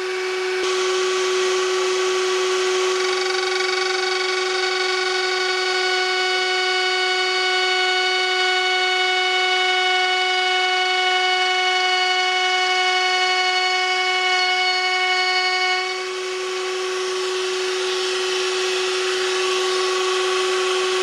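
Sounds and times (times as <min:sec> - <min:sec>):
router whining: 0:00.0 - 0:21.0.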